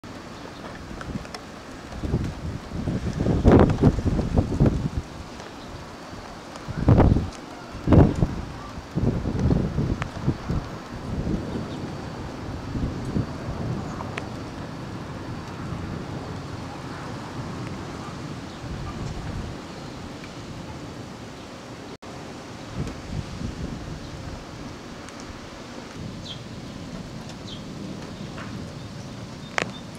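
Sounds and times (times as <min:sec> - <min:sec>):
gusty wind buffeting microphone: 0:00.0 - 0:29.9.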